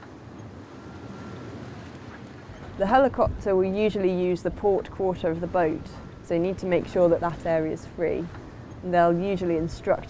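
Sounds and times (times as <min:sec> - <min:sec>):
water rushing past yacht: 0:00.0 - 0:10.0
wind: 0:00.0 - 0:10.0.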